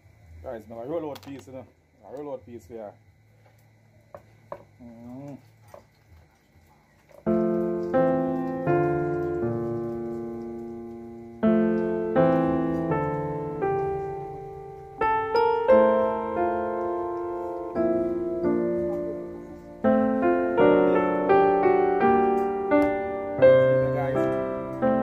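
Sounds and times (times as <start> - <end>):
slow piano music: 7.2 - 25.0.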